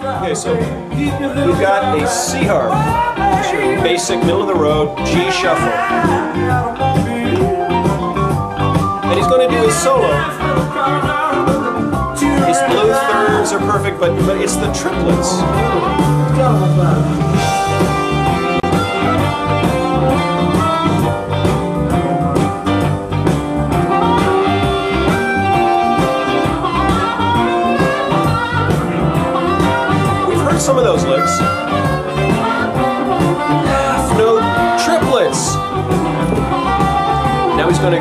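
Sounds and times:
band playing shuffle: 0:00.0 - 0:38.0
blues harmonica solo: 0:01.1 - 0:38.0.

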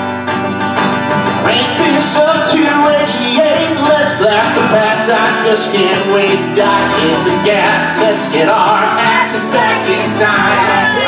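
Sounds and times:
acoustic guitar strumming: 0:00.0 - 0:11.0
man singing: 0:01.4 - 0:11.0.

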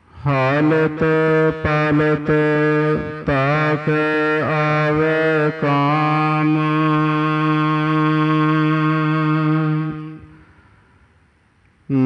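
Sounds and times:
person singing: 0:00.2 - 0:10.4.

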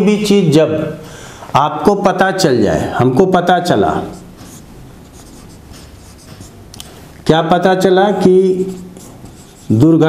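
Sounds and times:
marker writing on whiteboard: 0:03.9 - 0:06.8, 0:08.5 - 0:10.0.

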